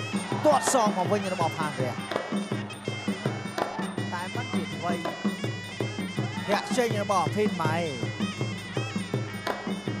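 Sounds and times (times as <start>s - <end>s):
oboe playing nasal melody: 0.0s - 10.0s
quick drum beat: 0.0s - 10.0s
commentators talking: 0.2s - 2.2s, 3.5s - 5.3s.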